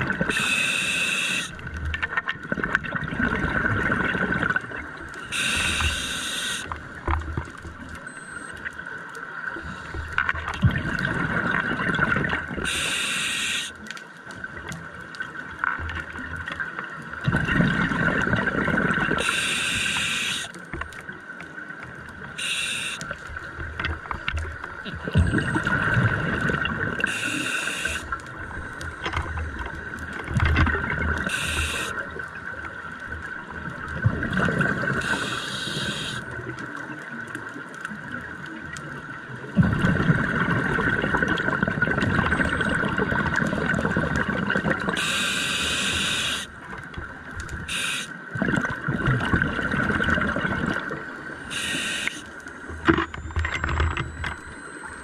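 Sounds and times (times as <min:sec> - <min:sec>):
hissing regulator breaths: 0:00.3 - 0:01.5, 0:05.3 - 0:06.6, 0:12.7 - 0:13.7, 0:19.2 - 0:20.5, 0:22.4 - 0:23.0, 0:27.1 - 0:28.1, 0:31.3 - 0:31.9, 0:35.0 - 0:36.2, 0:45.0 - 0:46.5, 0:47.7 - 0:48.1, 0:51.5 - 0:52.2
exhaled bubbles rushing underwater: 0:01.3 - 0:07.5, 0:10.4 - 0:12.9, 0:16.0 - 0:20.3, 0:22.2 - 0:36.9, 0:38.0 - 0:51.8.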